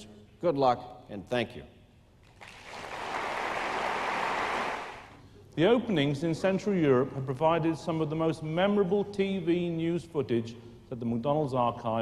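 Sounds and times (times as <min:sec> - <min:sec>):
audience applauding: 0:02.3 - 0:05.2.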